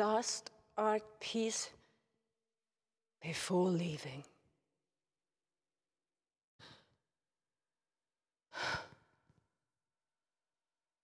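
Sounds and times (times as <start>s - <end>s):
woman breathing: 6.6s - 7.0s, 8.5s - 9.3s.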